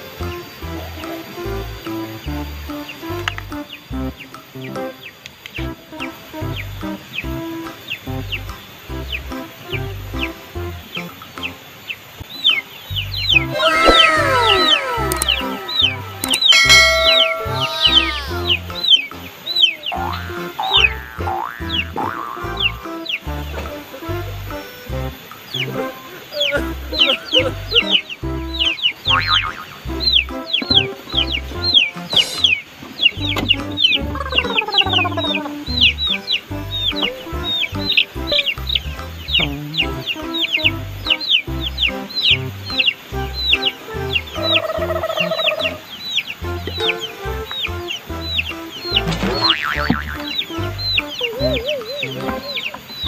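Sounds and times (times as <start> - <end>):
background music with steady beat: 0.0 - 53.0
chick peeping: 2.7 - 53.0.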